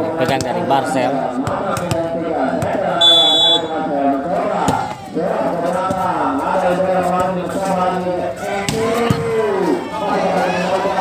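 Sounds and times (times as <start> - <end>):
people calling out: 1.1 - 6.8
referee's whistle blast: 3.0 - 3.8.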